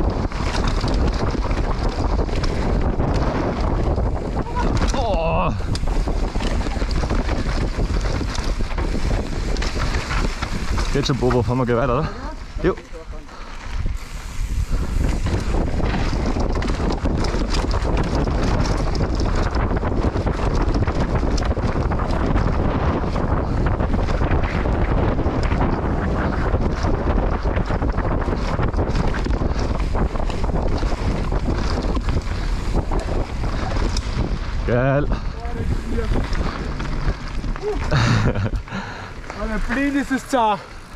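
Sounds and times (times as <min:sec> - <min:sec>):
bike knocks and clatter: 0:00.0 - 0:12.0, 0:14.9 - 0:34.7
bike tyre noise: 0:00.0 - 0:40.9
wind buffeting microphone: 0:00.0 - 0:40.9.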